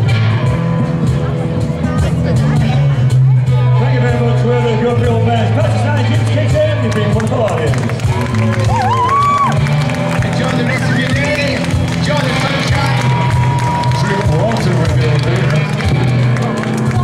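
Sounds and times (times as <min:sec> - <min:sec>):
live band through pa: 0:00.0 - 0:17.0.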